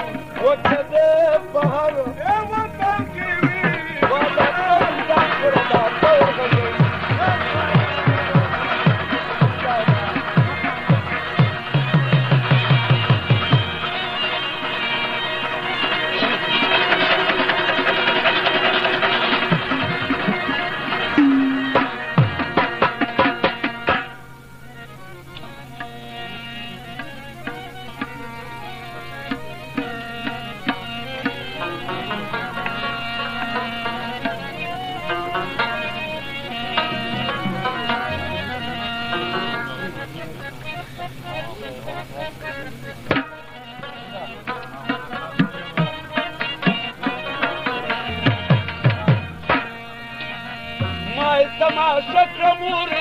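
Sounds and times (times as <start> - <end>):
broken voices: 0.0 - 53.0
fast plucked-string folk music: 0.0 - 53.0
soft instrument phrases: 0.0 - 53.0
steady held tones: 0.0 - 53.0.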